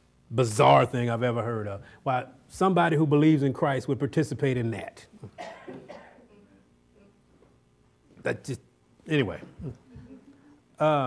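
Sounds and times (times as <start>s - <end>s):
person coughing: 5.3s - 6.5s.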